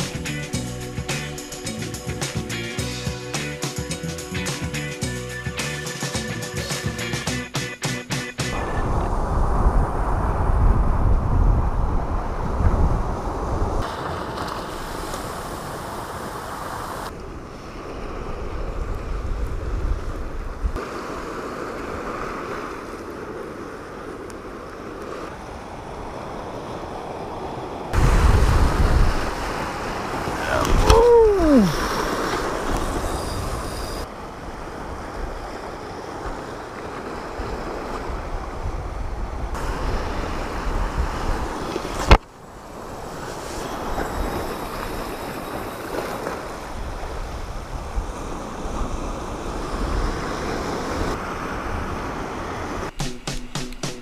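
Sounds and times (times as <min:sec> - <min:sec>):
wind buffeting microphone: 0:08.5 - 0:16.4, 0:17.3 - 0:20.8, 0:25.4 - 0:52.9
waves washing against rocks: 0:20.8 - 0:52.9.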